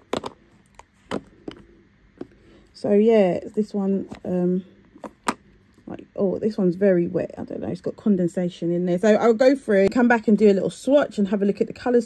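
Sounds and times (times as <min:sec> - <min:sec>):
plastic cases clacking together: 0:00.0 - 0:02.4.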